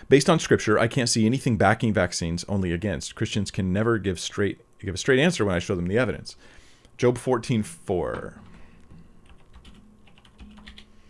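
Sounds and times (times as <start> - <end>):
computer keyboard typing: 8.1 - 10.9.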